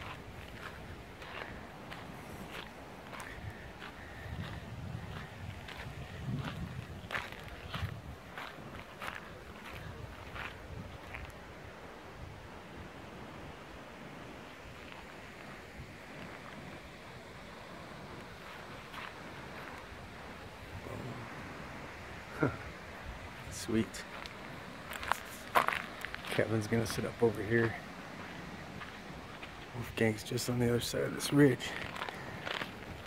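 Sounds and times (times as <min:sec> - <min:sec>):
footsteps crunching on gritty ground: 0:00.0 - 0:11.4, 0:18.3 - 0:19.9, 0:23.4 - 0:29.9, 0:31.6 - 0:33.0
wind hiss: 0:00.0 - 0:33.0.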